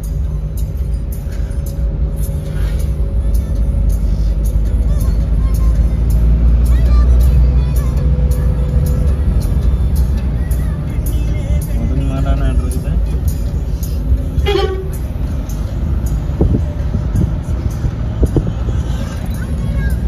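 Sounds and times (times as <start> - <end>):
car engine rumble from inside: 0.0 - 20.0
tyres on road: 0.0 - 20.0.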